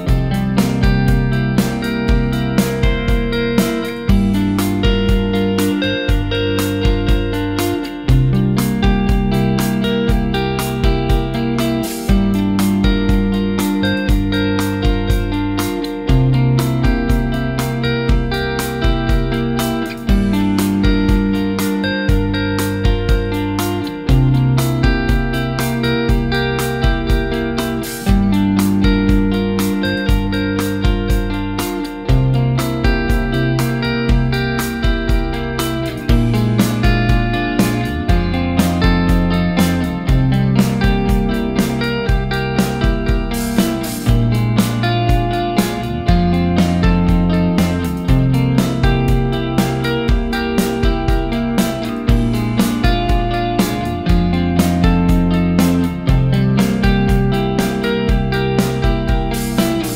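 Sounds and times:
electric guitar with delay: 0.0s - 59.9s
steady beat: 0.0s - 59.9s.

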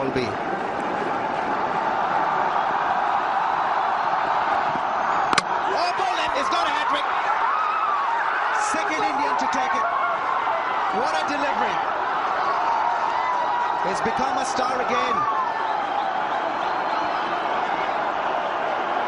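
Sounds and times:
crowd cheering and shouting: 0.0s - 19.0s
stadium crowd noise: 0.0s - 19.0s
ball hitting stumps crack: 5.3s - 5.6s.

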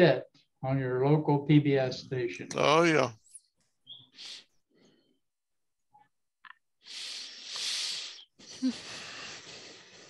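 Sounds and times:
man talking: 0.0s - 3.2s.

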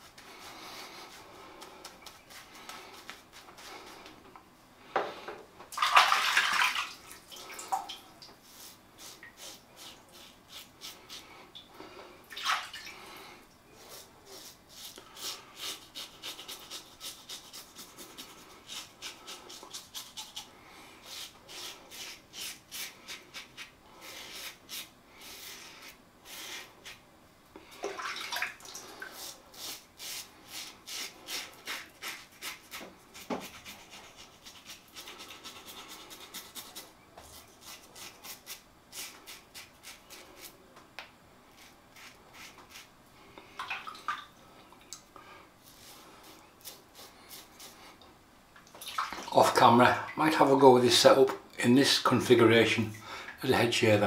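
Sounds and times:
running water: 5.7s - 8.3s, 27.8s - 29.1s, 48.6s - 51.0s
razor scraping stubble: 41.5s - 42.9s.

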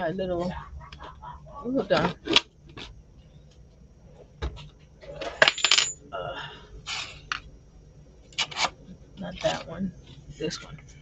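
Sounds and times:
tools scraping and clattering: 4.6s - 6.0s.

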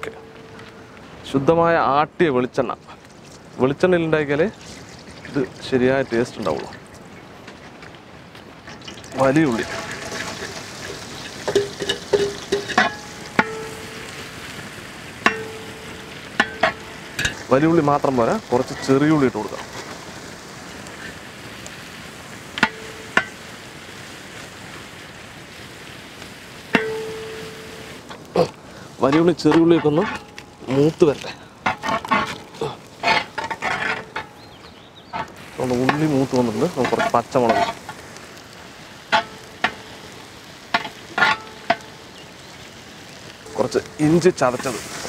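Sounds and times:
shallots sizzling in a pot: 0.0s - 45.0s
metal ladle stirring: 8.8s - 14.2s
metal spatula scraping pot: 9.4s - 14.2s, 29.1s - 30.3s, 31.6s - 34.5s, 36.8s - 37.9s, 40.8s - 41.8s
ladle knocking on pot: 11.5s - 13.8s.

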